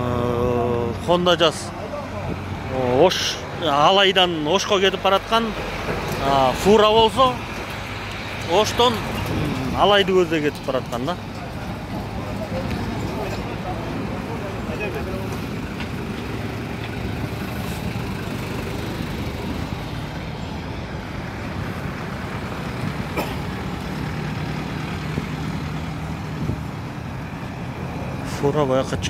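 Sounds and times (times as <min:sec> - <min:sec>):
road traffic engines: 0:00.0 - 0:29.0.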